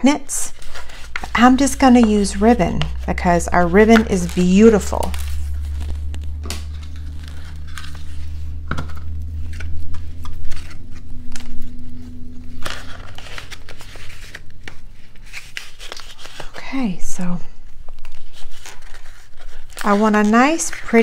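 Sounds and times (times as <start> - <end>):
low steady hum: 0.0 - 21.0
paper rustling and scraping: 0.0 - 21.0.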